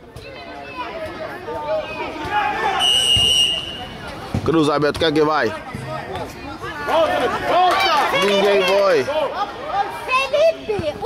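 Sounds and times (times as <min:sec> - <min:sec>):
spectators' voices: 0:00.0 - 0:11.0
referee's whistle: 0:02.8 - 0:04.0.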